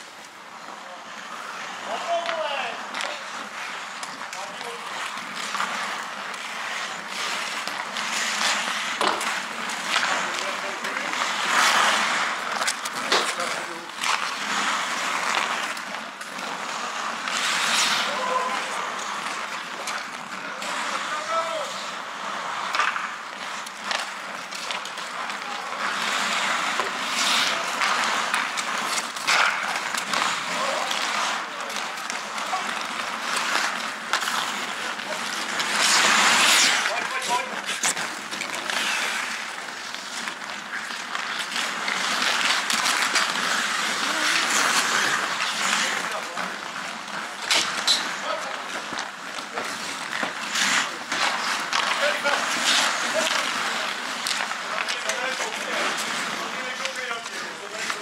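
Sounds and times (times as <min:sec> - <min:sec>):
skate blades scraping ice: 0:00.0 - 0:58.0
sticks and puck clattering: 0:00.0 - 0:58.0
players calling out: 0:00.7 - 0:58.0.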